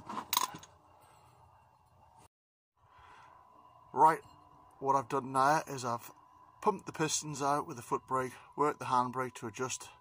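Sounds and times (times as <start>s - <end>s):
faint background hum: 0.1s - 10.0s.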